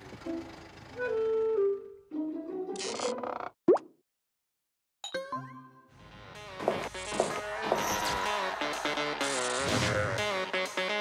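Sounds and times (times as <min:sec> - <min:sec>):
light comic music: 0:00.2 - 0:03.4, 0:05.1 - 0:11.0.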